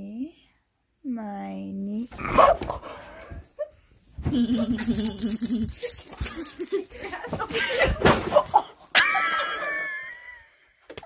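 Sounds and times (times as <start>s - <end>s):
dog barking: 2.3s - 2.8s.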